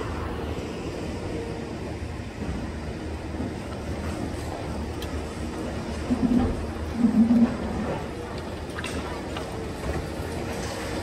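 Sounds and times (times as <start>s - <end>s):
heavy engine rumbling: 0.0s - 11.0s.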